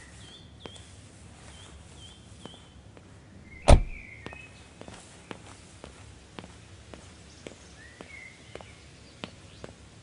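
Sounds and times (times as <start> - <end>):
car door slamming shut: 3.5 - 4.0.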